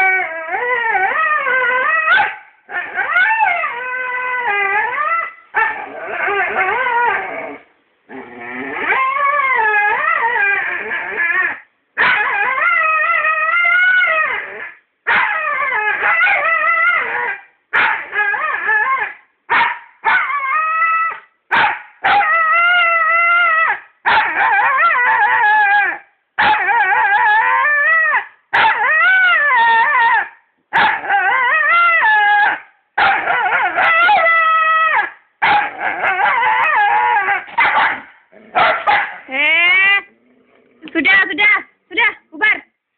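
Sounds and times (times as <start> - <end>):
dog howling and whining: 0.0 - 19.2, 20.0 - 21.3, 22.0 - 39.1
dog yipping: 2.1 - 2.4, 12.0 - 12.6, 15.1 - 22.6, 23.6 - 39.3.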